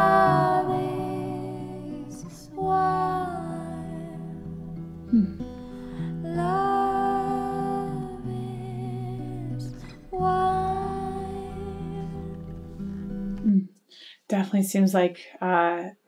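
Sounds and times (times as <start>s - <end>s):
woman singing long notes: 0.0s - 5.4s, 6.0s - 12.4s
acoustic guitar: 0.0s - 13.8s.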